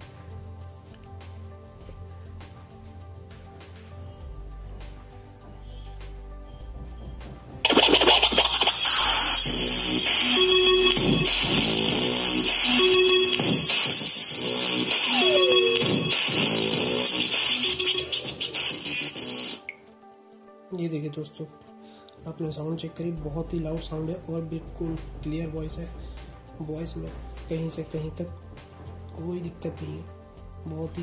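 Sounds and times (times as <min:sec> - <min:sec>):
song from portable speaker: 0:07.6 - 0:19.8.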